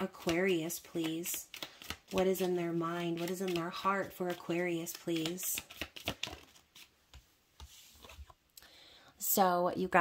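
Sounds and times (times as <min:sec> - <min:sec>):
cards clicking and flicking: 0:00.0 - 0:07.2.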